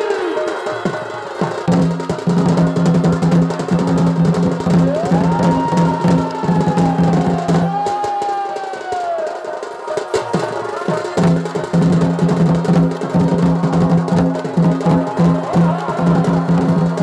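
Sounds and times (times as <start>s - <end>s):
fast dense drumming: 0.8s - 17.0s.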